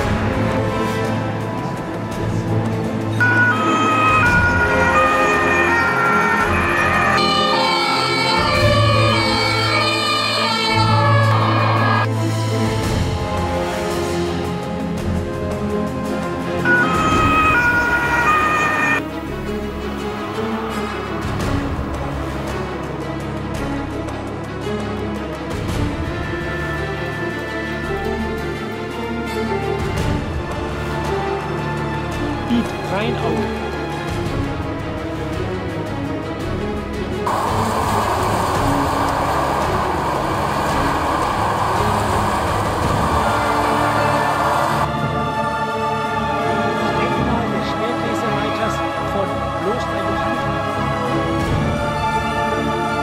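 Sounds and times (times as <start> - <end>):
background music: 0.0 - 53.0
two-tone emergency siren: 3.2 - 12.1, 16.6 - 19.2, 37.3 - 45.1
low rumble: 37.3 - 45.1.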